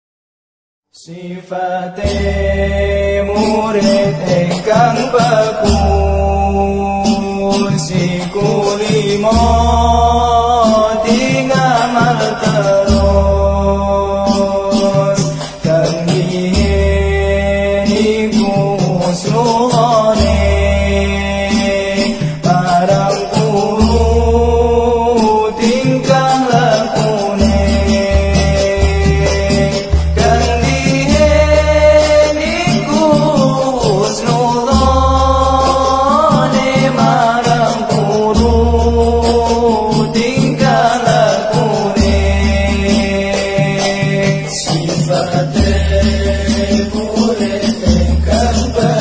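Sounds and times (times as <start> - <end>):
person singing chant-like melody: 1.0 - 49.0
light percussion: 2.0 - 49.0
musical accompaniment: 2.6 - 49.0.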